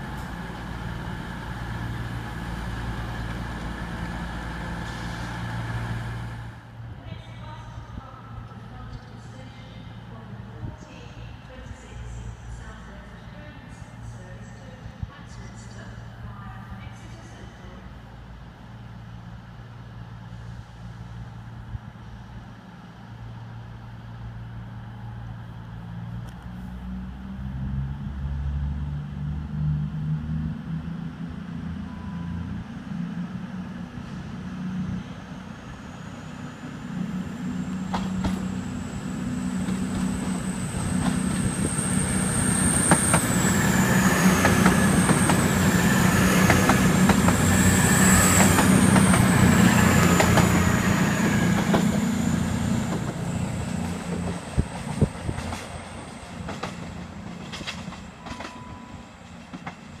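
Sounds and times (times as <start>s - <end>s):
train diesel engines droning: 0.0s - 60.0s.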